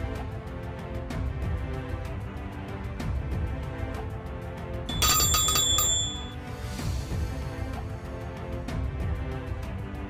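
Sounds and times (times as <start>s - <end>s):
background music: 0.0s - 10.0s
bright bell chime: 4.9s - 6.4s.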